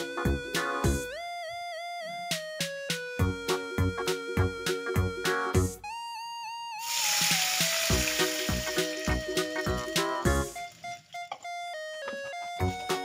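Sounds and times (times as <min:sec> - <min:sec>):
background music with a beat: 0:00.0 - 0:01.2, 0:02.1 - 0:06.0, 0:07.1 - 0:13.0
water sizzling in hot oil: 0:06.8 - 0:11.2.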